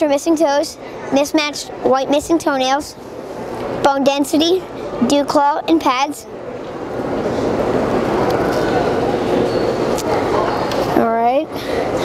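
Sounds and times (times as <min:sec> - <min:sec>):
steady hum-like background noise: 0:00.0 - 0:12.0
distant indistinct voices: 0:04.4 - 0:12.0.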